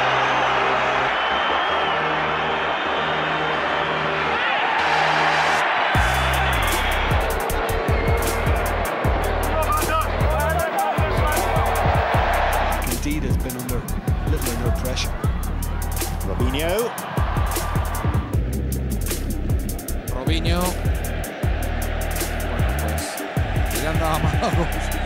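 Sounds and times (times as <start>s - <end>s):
stadium crowd noise: 0.0s - 18.4s
background music with thumping bass: 4.8s - 25.0s.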